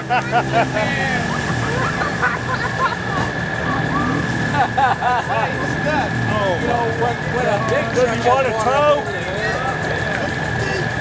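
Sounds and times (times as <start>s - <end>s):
high-pitched whine: 0.0s - 11.0s
people talking: 0.0s - 11.0s
truck engine droning: 0.0s - 11.0s.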